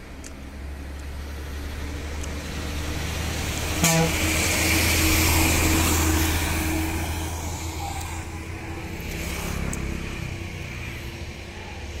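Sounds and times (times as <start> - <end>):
bus engine rumbling past: 0.0 - 12.0
road traffic: 0.0 - 12.0.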